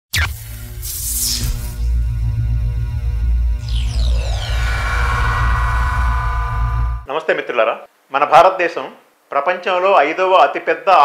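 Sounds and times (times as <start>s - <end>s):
electronic intro music: 0.1s - 7.1s
shimmering falling sweep: 3.6s - 7.1s.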